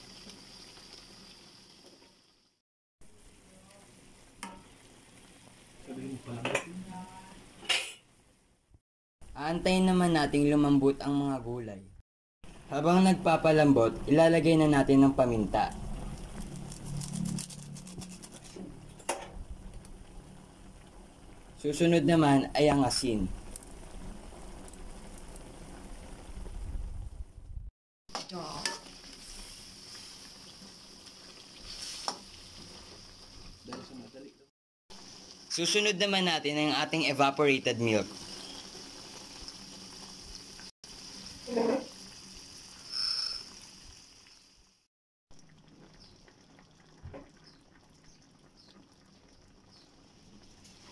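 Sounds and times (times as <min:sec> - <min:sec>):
pot simmering with bubbling: 0:12.5 - 0:27.3, 0:28.1 - 0:34.0, 0:37.8 - 0:44.6, 0:45.3 - 0:50.9.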